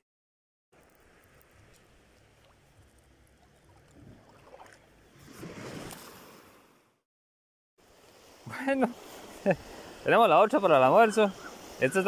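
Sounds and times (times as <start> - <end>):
small waves lapping shore: 1.0 - 7.0, 7.8 - 12.0.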